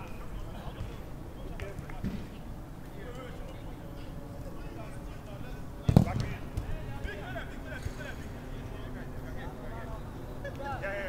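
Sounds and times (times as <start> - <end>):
football kick thump: 5.9 - 6.7.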